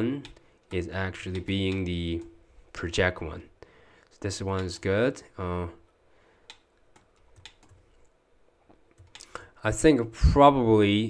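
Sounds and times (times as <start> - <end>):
keyboard keys clicking: 6.5 - 7.8, 8.9 - 9.3.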